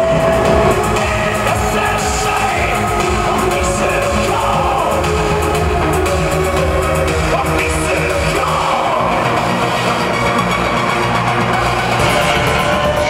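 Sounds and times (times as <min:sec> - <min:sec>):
heavy electronic bass beat: 0:00.0 - 0:08.5
loud live band music: 0:00.0 - 0:13.0.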